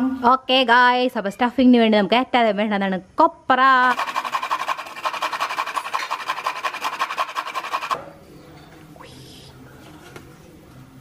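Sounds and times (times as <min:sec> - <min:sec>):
coconut grating on metal grater: 0:03.8 - 0:08.0.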